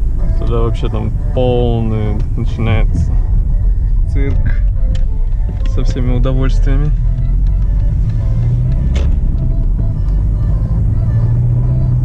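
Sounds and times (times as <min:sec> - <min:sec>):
car radio music: 0:00.0 - 0:12.0
engine and road rumble: 0:00.0 - 0:12.0.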